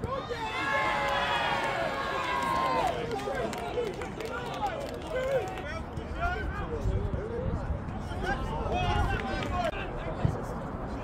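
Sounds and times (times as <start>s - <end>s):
long drawn-out shout: 0.1s - 3.5s.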